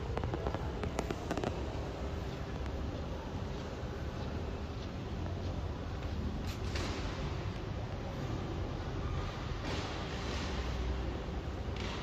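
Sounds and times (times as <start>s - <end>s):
steady low rumble: 0.0s - 9.4s.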